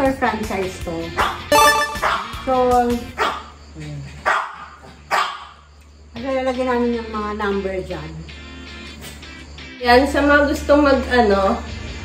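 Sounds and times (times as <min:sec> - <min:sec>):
dog barking: 0:01.1 - 0:02.5, 0:03.2 - 0:03.6, 0:04.2 - 0:05.7.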